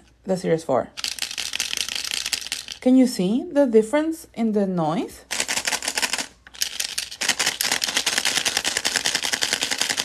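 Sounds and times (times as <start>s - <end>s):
toys rattling in plastic capsules: 1.0s - 3.0s, 5.2s - 10.0s.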